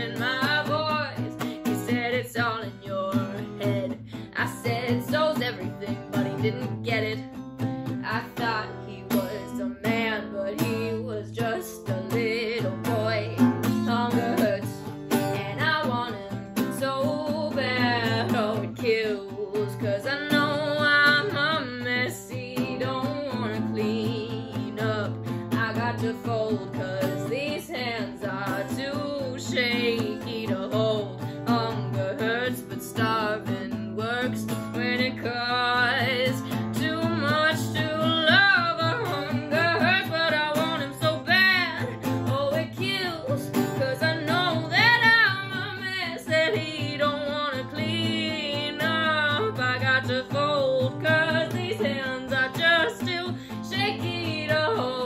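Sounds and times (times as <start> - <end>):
strummed acoustic guitar: 0.0 - 55.0
woman singing: 0.0 - 55.0.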